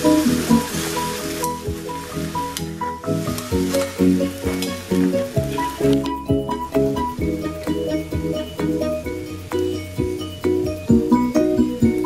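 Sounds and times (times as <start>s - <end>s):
background music with steady beat: 0.0s - 12.0s
food sizzling: 0.0s - 12.0s.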